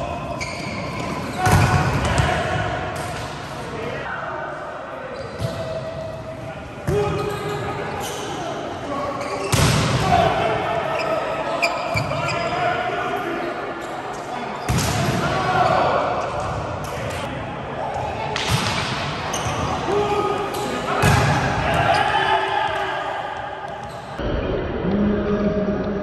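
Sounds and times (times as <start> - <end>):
players calling and shouting: 0.0 - 24.2.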